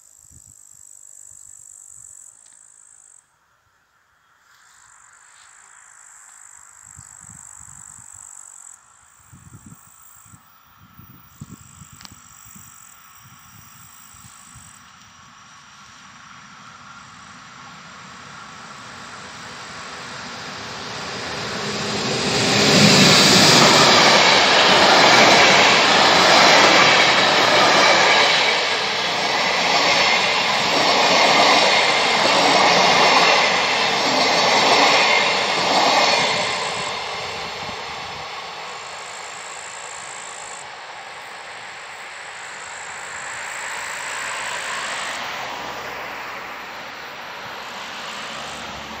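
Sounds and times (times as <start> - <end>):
train wheels on rails: 9.2 - 49.0.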